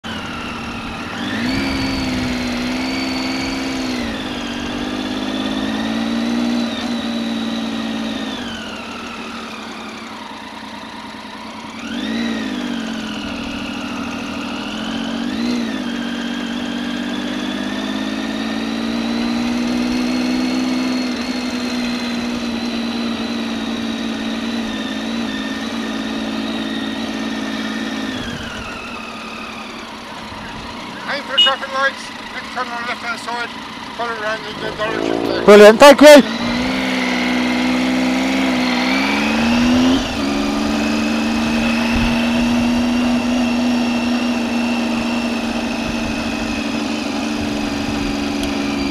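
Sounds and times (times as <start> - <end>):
motorcycle engine accelerating: 0.0 - 48.9.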